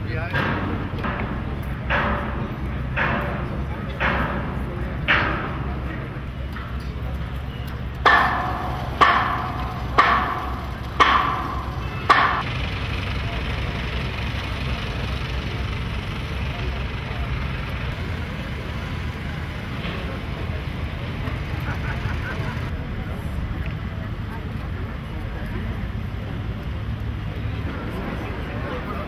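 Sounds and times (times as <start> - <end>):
metallic clanks on steel: 0.0 - 22.7
low rumble of construction noise: 0.0 - 29.0.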